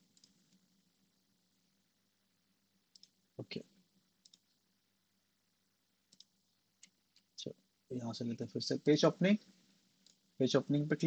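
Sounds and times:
computer mouse clicking: 0.0 - 0.7, 2.9 - 3.2, 4.2 - 4.6, 6.1 - 7.3, 10.0 - 10.3.

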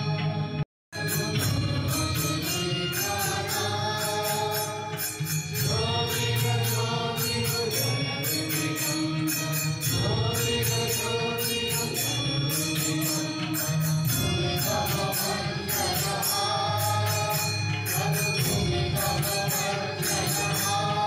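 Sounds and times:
devotional chanting: 0.0 - 21.0.

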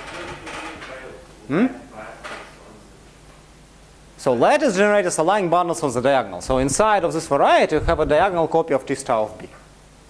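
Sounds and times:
man saying mm-hmm: 1.4 - 2.1.

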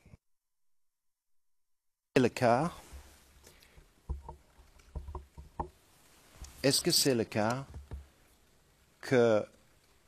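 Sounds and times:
dull knocks on microphone: 4.1 - 5.8, 7.7 - 8.1.

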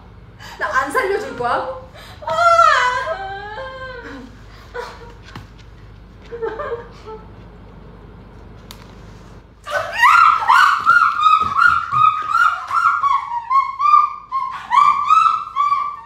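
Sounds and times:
small dog yelping: 9.7 - 16.0.

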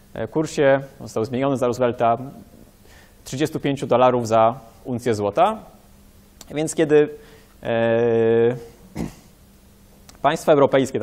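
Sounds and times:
soft breath: 2.8 - 3.2.

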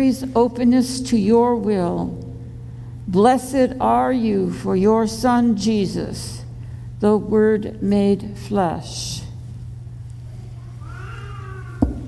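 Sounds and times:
steady low hum: 0.0 - 12.0
faint high-pitched cry: 10.3 - 12.0.

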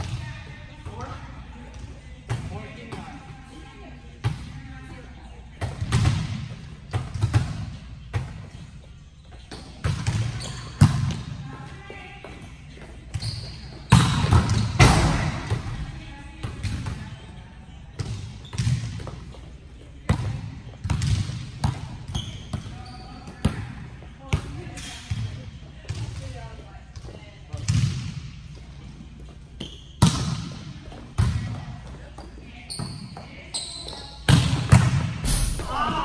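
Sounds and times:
volleyball smacks echoing in hall: 5.6 - 8.4, 13.9 - 17.1, 20.1 - 22.8, 27.5 - 28.4, 30.0 - 31.8, 34.2 - 36.0.

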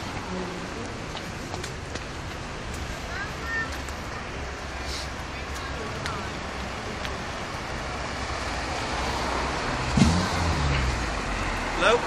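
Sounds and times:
low rumble of traffic: 0.0 - 12.0
vehicle engine passing close: 8.2 - 12.0.

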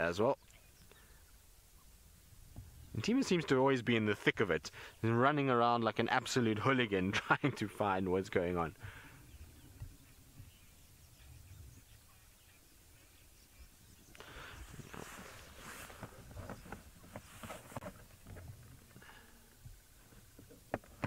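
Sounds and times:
animals rustling through dry grass: 8.9 - 20.3.

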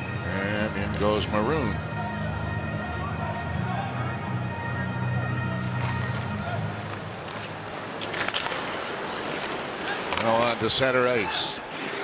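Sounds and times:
sustained music tones: 0.0 - 7.7
arena crowd noise: 0.0 - 12.0
sticks and puck clacking on ice: 5.6 - 11.0.

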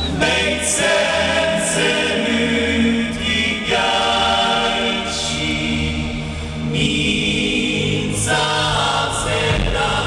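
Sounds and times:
choir chanting: 0.0 - 10.0
low steady drone: 0.0 - 10.0.

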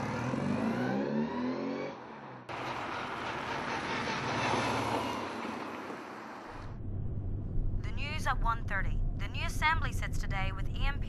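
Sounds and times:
car engine accelerating: 0.0 - 7.8.

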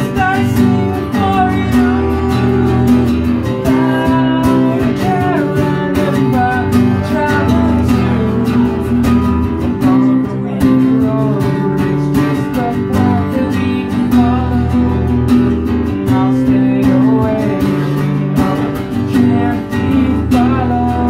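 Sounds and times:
acoustic guitar strumming: 0.0 - 21.0
man singing: 0.0 - 21.0.

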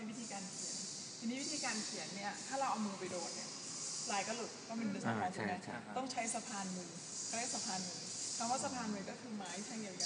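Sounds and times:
woman talking: 0.0 - 3.5, 4.1 - 10.0
steady high hiss: 0.0 - 5.1, 6.0 - 10.0.

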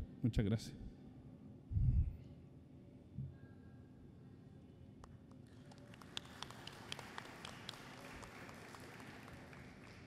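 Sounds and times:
audience applause: 5.6 - 10.0.

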